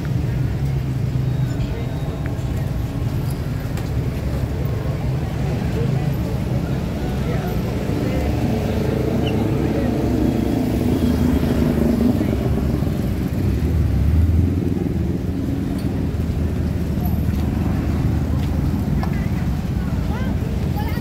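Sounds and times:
car and motorcycle traffic: 0.0 - 21.0
voices of passers-by: 0.0 - 21.0.

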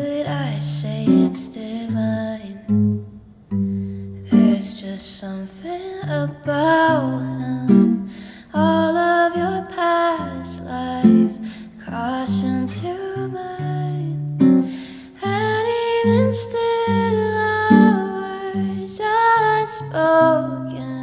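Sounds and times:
woman singing slow song: 0.0 - 3.1, 4.2 - 21.0
acoustic guitar: 0.0 - 21.0.

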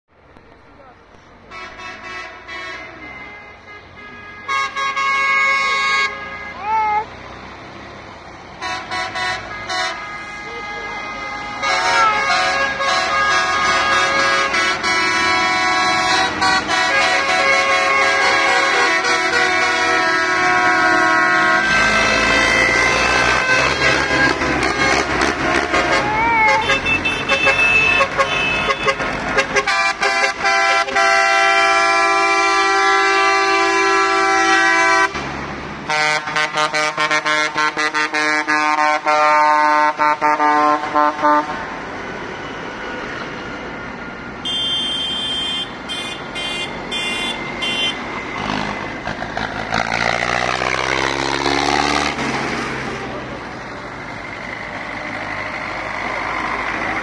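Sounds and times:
diesel tractors driving past: 0.1 - 57.0
tractor horns honking: 1.4 - 7.2, 8.5 - 43.6, 44.3 - 53.5.

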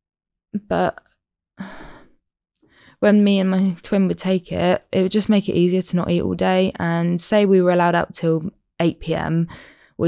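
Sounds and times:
woman sighing: 1.6 - 2.2
short breath: 1.6 - 3.0, 9.5 - 10.0.

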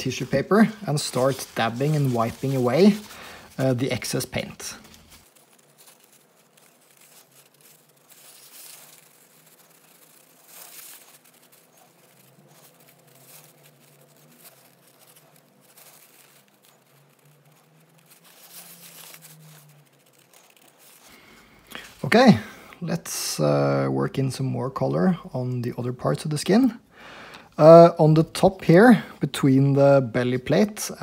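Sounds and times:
tissue paper rustling: 0.0 - 23.1.

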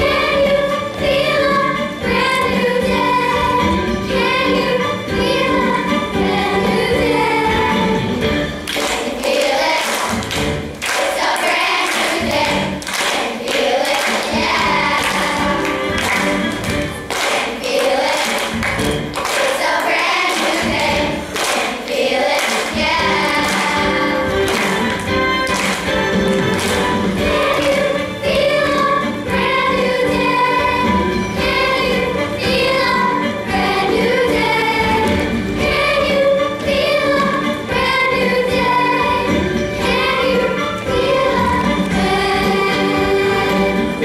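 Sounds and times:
children's choir singing: 0.0 - 44.0
instrumental accompaniment: 0.0 - 44.0.

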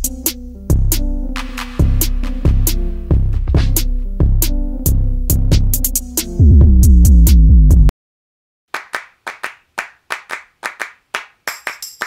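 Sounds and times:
rhythmic hand claps: 8.7 - 12.0.

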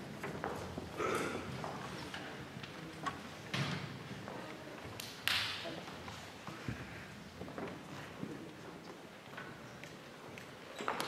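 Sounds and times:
footsteps on wooden stage: 0.0 - 5.0.

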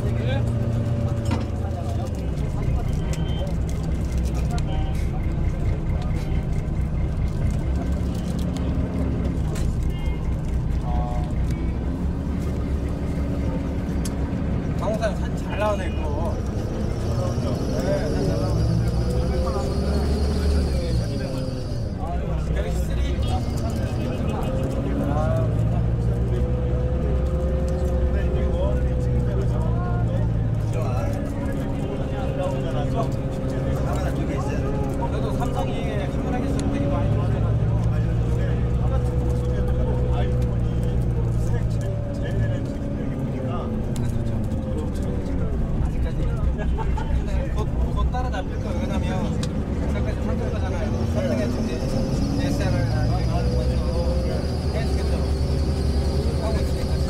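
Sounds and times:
bus engine and road rumble: 0.0 - 57.0
indistinct voices talking: 0.0 - 57.0.

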